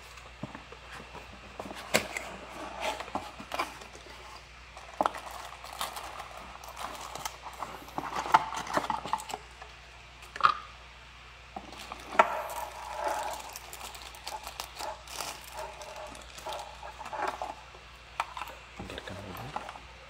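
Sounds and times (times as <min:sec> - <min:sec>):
plastic bag crinkling: 0:04.8 - 0:09.4, 0:11.6 - 0:17.6.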